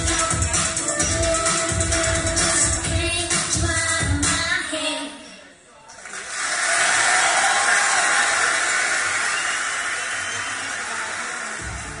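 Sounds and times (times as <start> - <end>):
audience applause: 6.0 - 12.0.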